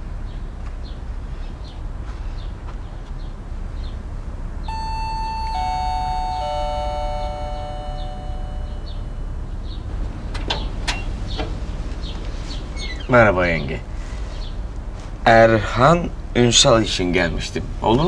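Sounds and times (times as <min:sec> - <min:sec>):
chime doorbell ringing: 0:04.7 - 0:09.6.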